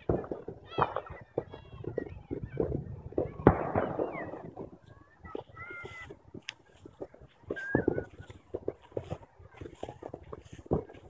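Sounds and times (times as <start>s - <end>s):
firework bang: 0.0s - 4.7s
firework crackling: 0.0s - 11.0s
small firework pops: 0.0s - 11.0s.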